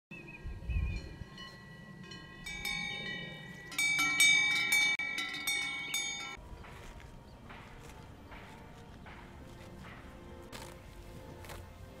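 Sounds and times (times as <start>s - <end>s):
cowbells clanging: 0.9s - 10.2s.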